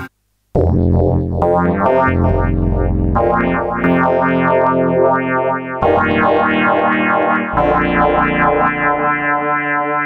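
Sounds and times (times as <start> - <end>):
synthesizer sustained chords: 0.6 - 10.0.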